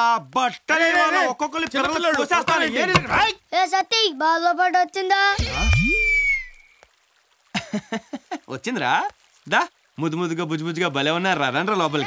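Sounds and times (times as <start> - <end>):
man speaking: 0.0 - 3.4, 8.6 - 12.0.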